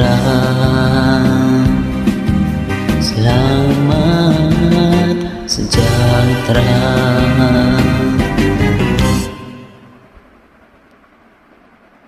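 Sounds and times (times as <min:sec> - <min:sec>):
faint low rumble with hiss: 0:00.0 - 0:12.0.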